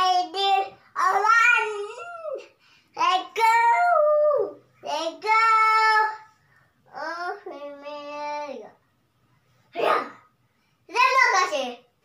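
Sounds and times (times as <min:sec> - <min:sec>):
girl singing: 0:00.0 - 0:02.4, 0:03.0 - 0:06.3.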